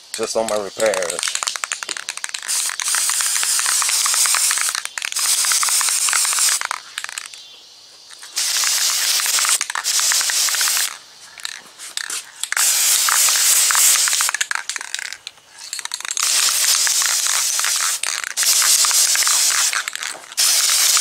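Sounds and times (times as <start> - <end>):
aerosol spray can hissing: 0.5 - 7.4, 8.2 - 21.0.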